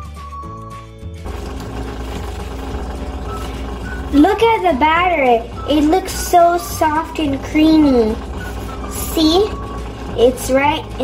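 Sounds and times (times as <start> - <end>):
background music: 0.0 - 11.0
whisk beating batter in metal bowl: 1.3 - 11.0.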